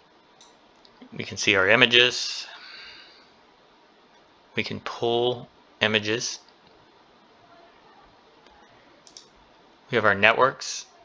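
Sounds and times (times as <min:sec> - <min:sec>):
low background hiss: 0:00.0 - 0:11.0
computer mouse clicking: 0:08.4 - 0:09.3.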